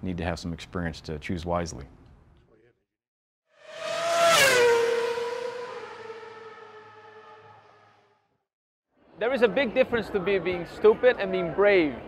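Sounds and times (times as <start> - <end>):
race car passing at speed: 3.6 - 8.2.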